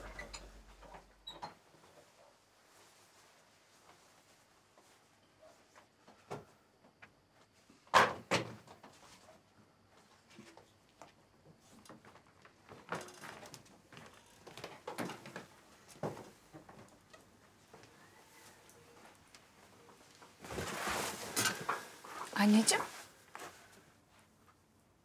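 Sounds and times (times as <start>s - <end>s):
rustling: 11.7s - 24.6s.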